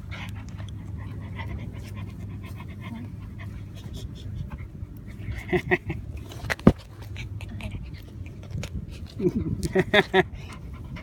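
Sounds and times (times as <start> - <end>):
puppy mouthing and chewing: 0.0 - 11.0.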